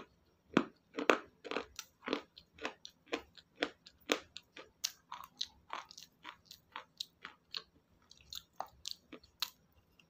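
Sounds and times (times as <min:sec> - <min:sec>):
mouth chewing crunchy food: 0:00.0 - 0:10.0.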